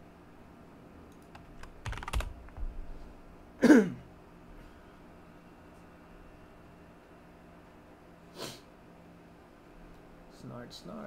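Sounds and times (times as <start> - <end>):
keyboard and mouse clicks: 1.1 - 2.6.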